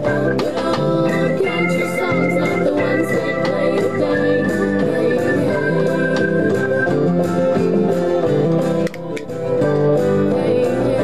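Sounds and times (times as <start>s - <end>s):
country music with guitar and organ: 0.0s - 8.6s.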